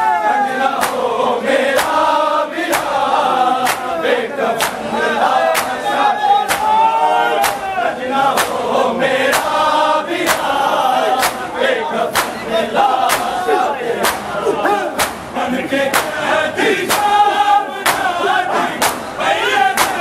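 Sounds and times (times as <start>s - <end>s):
men chanting in chorus: 0.0s - 20.0s
hands slapping chests in unison: 0.7s - 20.0s.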